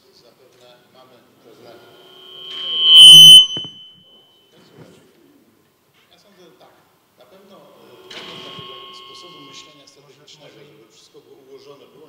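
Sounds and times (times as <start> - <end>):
microphone feedback squeal: 1.8 - 4.1, 8.1 - 9.9.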